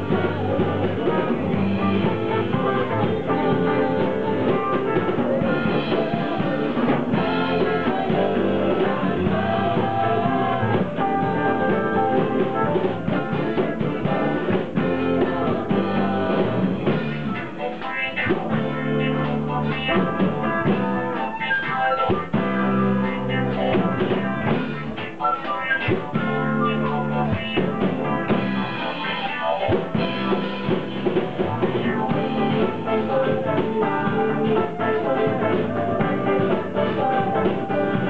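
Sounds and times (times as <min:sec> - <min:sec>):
bass guitar: 0:00.0 - 0:38.0
drum kit: 0:00.0 - 0:38.0
electric guitar: 0:00.0 - 0:38.0
flute melody: 0:00.0 - 0:38.0.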